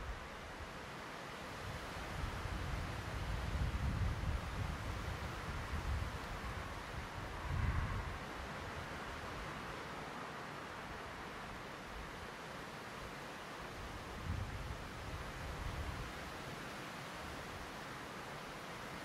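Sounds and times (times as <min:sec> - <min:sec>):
wind on microphone: 0:02.2 - 0:08.4, 0:14.2 - 0:16.1.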